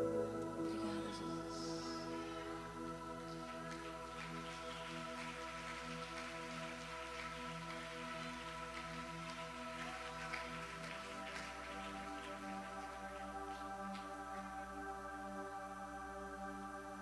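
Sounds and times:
ambient keyboard pad music: 0.0 - 17.0
faint rain-like crackling: 0.1 - 17.0.

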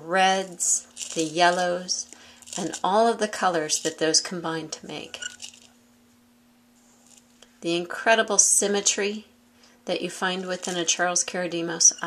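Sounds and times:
glass pieces clinking: 0.9 - 2.9, 5.1 - 5.7.

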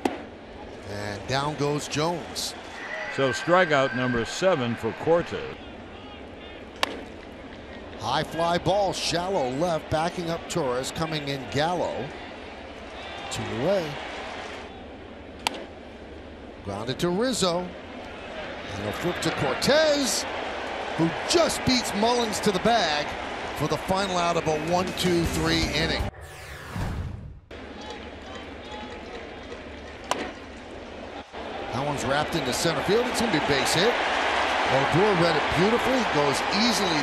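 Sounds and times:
short sweeping whoosh: 26.1 - 27.5.

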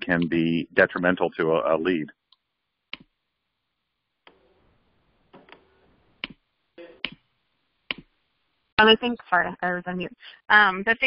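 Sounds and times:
distant voice: 0.0 - 2.1.

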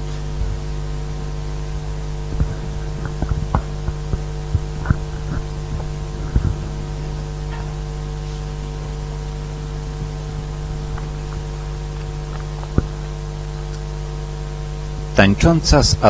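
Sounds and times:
electrical hum: 0.0 - 16.0
microphone handling knocks: 2.2 - 8.6, 9.7 - 13.2.

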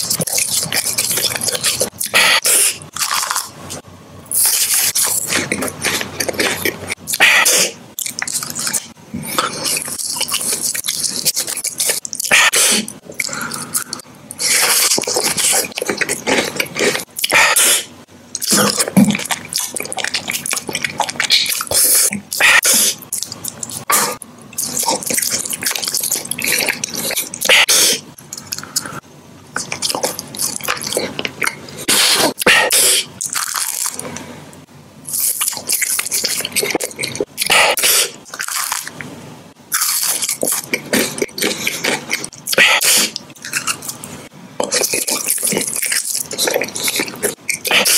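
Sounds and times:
chewing marshmallow: 0.0 - 34.2, 35.0 - 39.1, 39.7 - 47.9
wet smacking mouth sounds: 4.3 - 34.1
wet chewing and lip smacks: 23.0 - 23.9.

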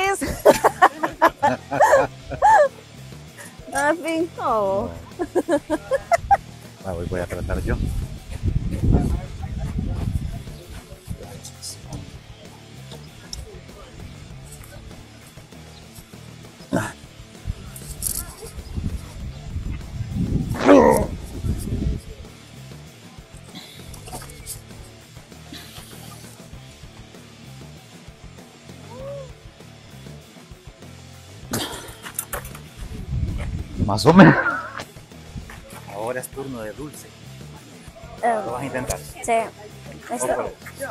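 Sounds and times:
background music: 0.0 - 40.9
man grunting and groaning: 16.7 - 17.1, 20.5 - 21.3.

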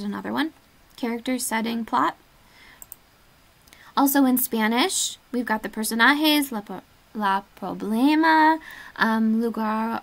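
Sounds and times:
faint computer clicks: 2.7 - 3.1.

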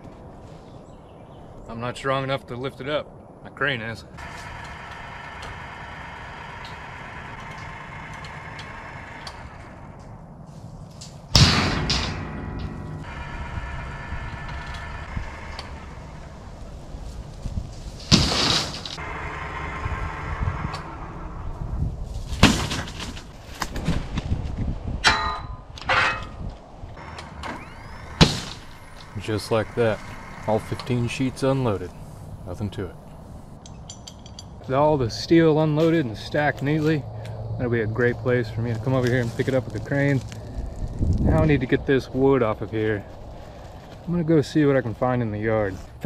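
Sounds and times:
crane motor whining: 4.2 - 10.4, 11.8 - 23.2, 26.9 - 33.6
steel plates clanging: 11.4 - 16.6, 25.0 - 26.4.

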